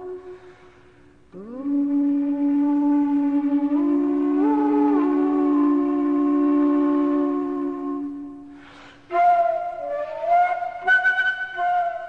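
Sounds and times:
flute multiphonic two-note sound: 0.0 - 0.7, 1.3 - 12.0.

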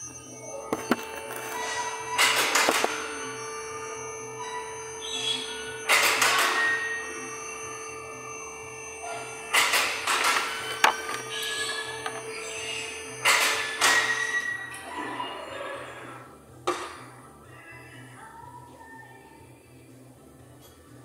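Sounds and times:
music: 0.0 - 21.0
steady hum: 0.0 - 21.0.

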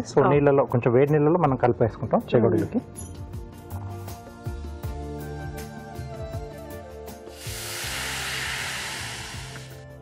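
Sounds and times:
background music: 0.0 - 10.0
water pouring from jug: 7.3 - 9.7
water sizzling in hot pan: 7.3 - 9.8.

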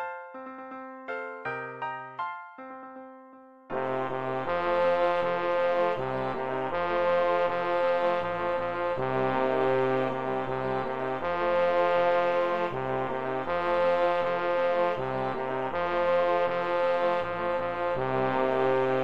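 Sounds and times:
piano accompaniment: 0.0 - 19.0
synthesized choral hymn: 3.7 - 19.0.

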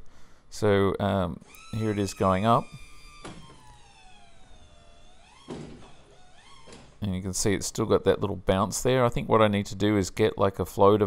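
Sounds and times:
hydraulic pump whine: 1.4 - 7.0
landing gear thunk: 5.4 - 6.0.

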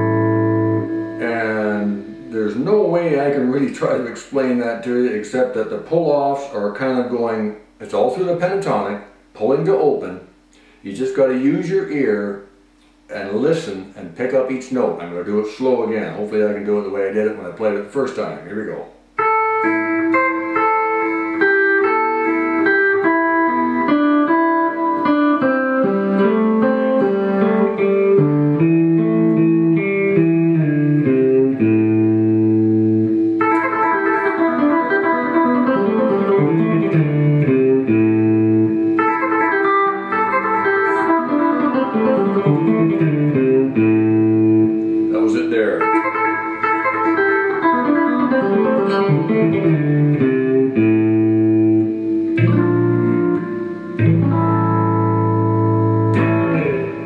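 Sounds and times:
fingerstyle electric guitar blues: 0.0 - 7.4, 13.6 - 57.0.

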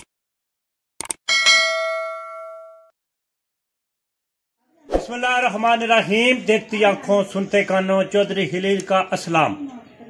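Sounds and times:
notification bell ding: 1.3 - 2.9.

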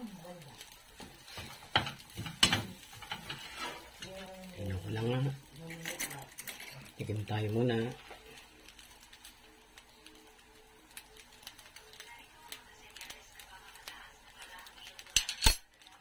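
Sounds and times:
metal utensils clinking: 5.6 - 7.0, 15.0 - 15.6.

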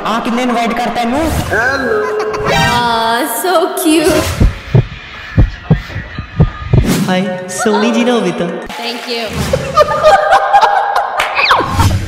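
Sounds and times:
heartbeat thumps: 4.0 - 7.3.

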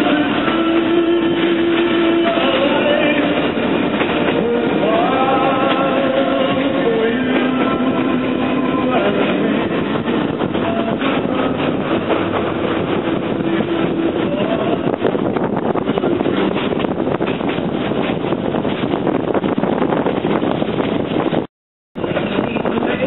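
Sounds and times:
rushing air: 0.0 - 23.0
train clatter: 0.0 - 23.0
train wheels rumbling on rails: 0.0 - 23.0.

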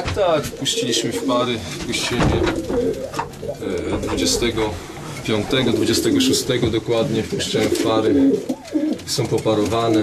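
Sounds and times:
pigeons cooing: 0.2 - 10.0.

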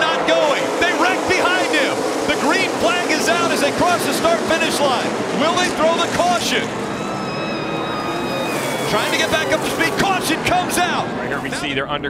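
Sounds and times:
constant rushing noise: 0.0 - 12.0
race car engines whining: 0.0 - 12.0.

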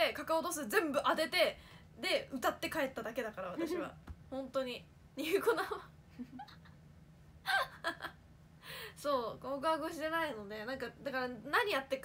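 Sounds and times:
woman laughing breathily: 7.4 - 8.9.

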